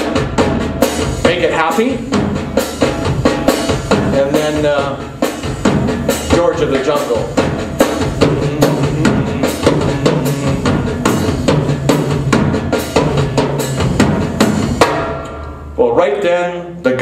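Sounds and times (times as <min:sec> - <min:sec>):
drum kit groove: 0:00.0 - 0:17.0.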